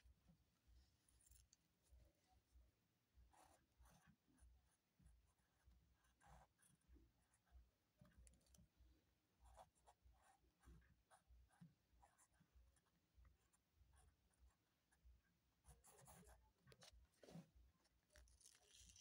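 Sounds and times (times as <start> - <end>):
ballpoint pen scratching on paper: 0.1 - 2.5, 3.2 - 19.0.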